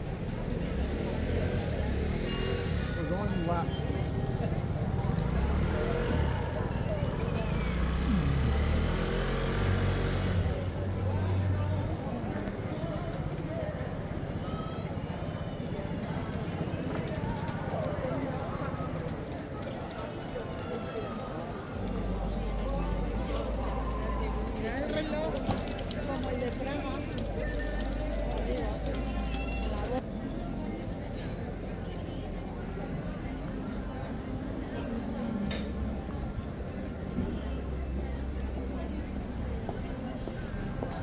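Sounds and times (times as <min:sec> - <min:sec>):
crowd murmur: 0:00.0 - 0:41.0
people talking: 0:00.0 - 0:41.0.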